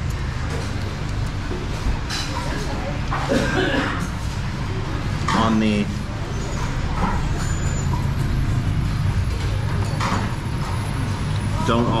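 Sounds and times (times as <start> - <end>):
street traffic rumble: 0.0 - 12.0
faint background voices: 1.7 - 7.6.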